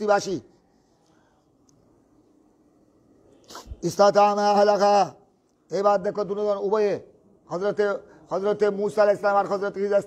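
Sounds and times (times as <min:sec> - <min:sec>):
man speaking: 0:00.0 - 0:00.6, 0:03.5 - 0:10.0.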